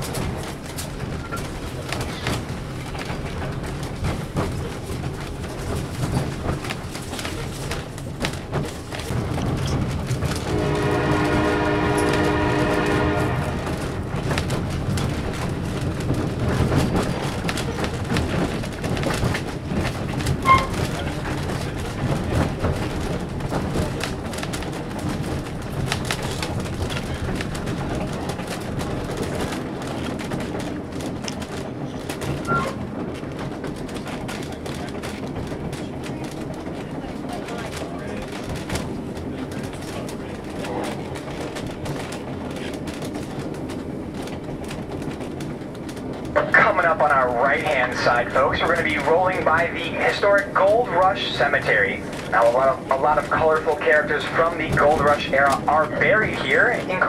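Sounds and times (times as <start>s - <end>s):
train coach rumbling on rails: 0.0s - 57.0s
locomotive horn: 10.4s - 14.0s, 32.5s - 32.8s.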